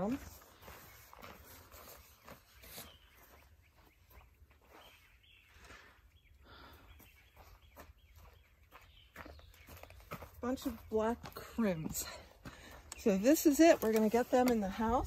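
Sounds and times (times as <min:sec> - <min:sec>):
footsteps on dry dirt: 0:00.0 - 0:15.0.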